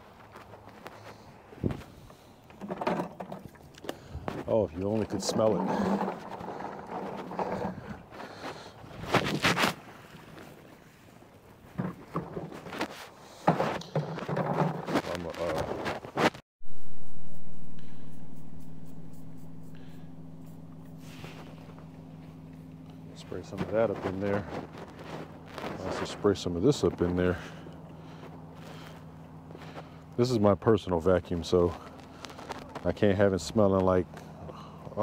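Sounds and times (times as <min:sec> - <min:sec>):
steady low hum: 0:00.0 - 0:35.0
dirty water sloshing and splashing: 0:02.5 - 0:16.0.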